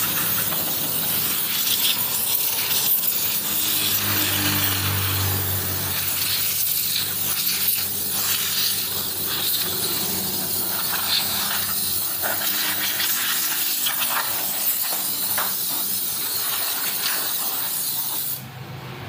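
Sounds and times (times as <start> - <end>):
spray gun hissing: 0.0 - 18.5.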